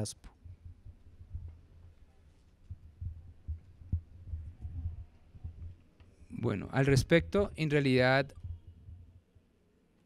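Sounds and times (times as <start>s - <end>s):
faint hum: 0.0s - 10.0s
microphone handling thumps: 2.6s - 5.8s.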